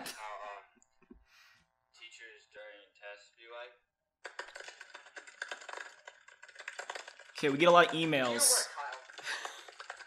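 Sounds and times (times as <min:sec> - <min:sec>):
laptop keyboard typing: 0:04.2 - 0:10.0
person speaking: 0:07.4 - 0:09.4.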